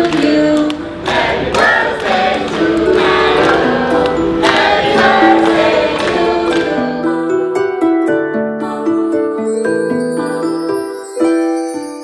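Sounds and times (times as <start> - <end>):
choir singing held notes: 0.0 - 7.4.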